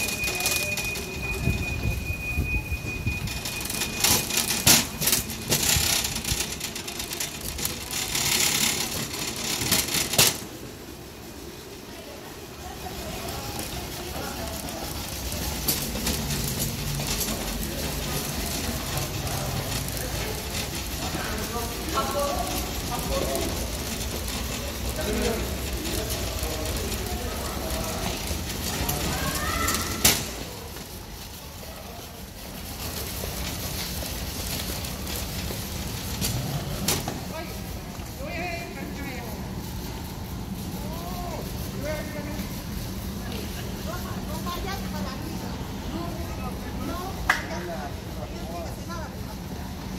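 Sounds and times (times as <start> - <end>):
low rumble of hall: 0.0 - 49.9
luggage wheels rolling on stone: 0.0 - 49.9
people talking: 0.0 - 49.9.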